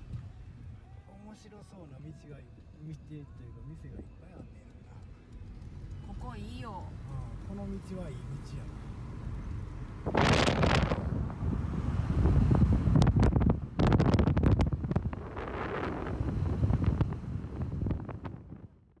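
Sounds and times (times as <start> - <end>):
car driving rumble: 2.6 - 19.0
wind buffeting microphone: 9.8 - 19.0.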